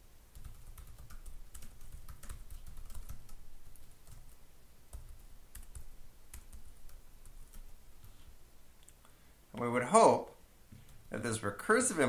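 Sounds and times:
typing on computer keyboard: 0.3s - 7.8s.

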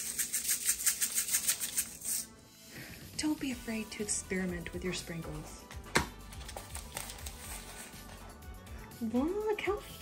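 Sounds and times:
sprinkles rattling in shaker jar: 0.0s - 2.3s.

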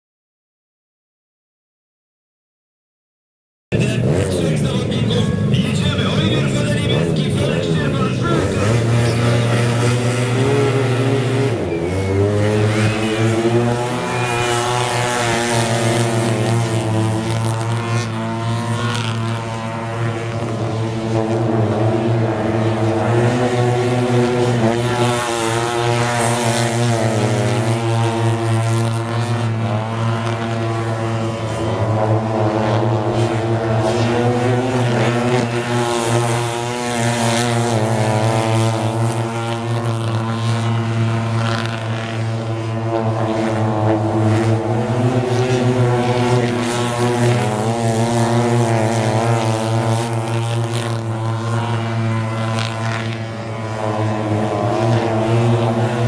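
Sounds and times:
motorcycle engines racing: 3.7s - 56.0s.

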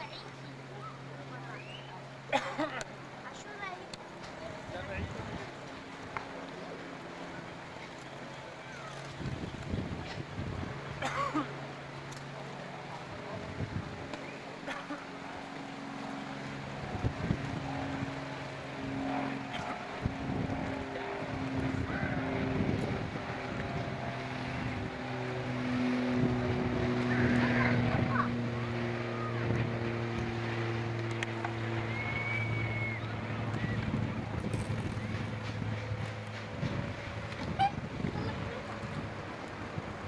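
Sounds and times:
boat engine droning: 0.0s - 40.0s
wind on microphone: 8.8s - 11.0s, 16.8s - 18.3s, 19.1s - 25.4s, 31.8s - 40.0s.

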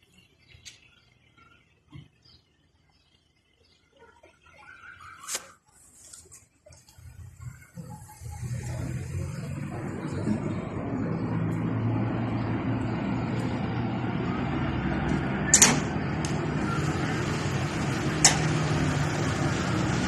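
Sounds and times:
vehicle engine running: 6.8s - 20.0s
sharp click: 15.5s - 16.4s.

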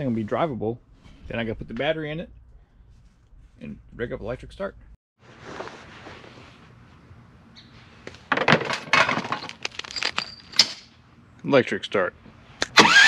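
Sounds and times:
soft rustle: 2.6s - 3.7s, 5.2s - 8.2s
hard objects clinking and knocking: 8.3s - 10.9s.

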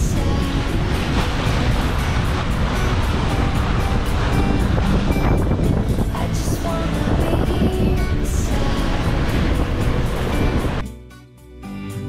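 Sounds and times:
water rushing past hull: 0.0s - 10.8s
wind buffeting microphone: 0.0s - 10.8s.

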